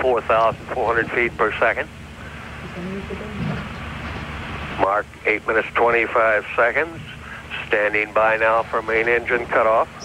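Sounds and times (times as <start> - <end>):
man speaking: 0.0 - 2.0, 4.8 - 10.0
broadcast audio hiss: 0.0 - 10.0
faint voices: 0.0 - 10.0.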